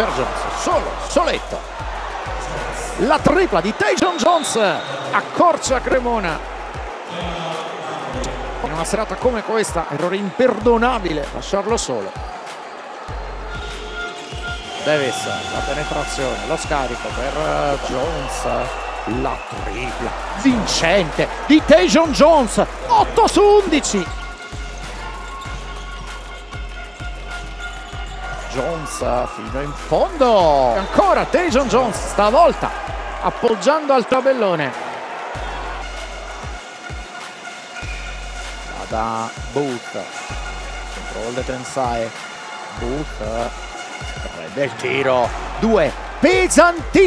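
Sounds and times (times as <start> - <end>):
crowd noise: 0.0 - 47.0
music playing: 0.0 - 47.0.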